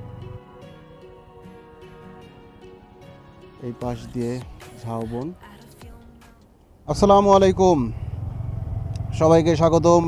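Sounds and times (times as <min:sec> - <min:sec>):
man talking: 0:03.6 - 0:05.4, 0:06.9 - 0:08.0, 0:09.1 - 0:10.0
motorcycle engine rumble: 0:06.8 - 0:10.0.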